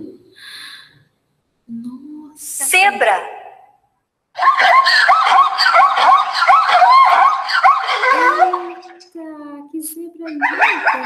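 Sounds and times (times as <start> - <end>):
zebra yelping barks: 4.4 - 9.0.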